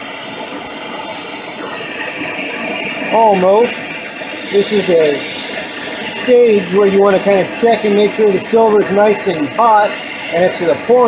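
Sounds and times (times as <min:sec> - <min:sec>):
torch flame hissing: 0:00.0 - 0:11.0.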